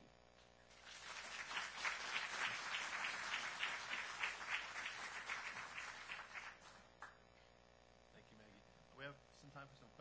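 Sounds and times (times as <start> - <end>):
audience applauding: 0.8 - 7.2.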